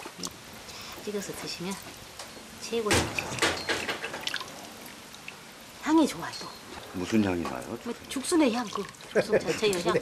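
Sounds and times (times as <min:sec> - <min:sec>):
woman speaking: 0:01.0 - 0:01.9, 0:02.6 - 0:03.2, 0:05.8 - 0:06.6, 0:07.8 - 0:10.0.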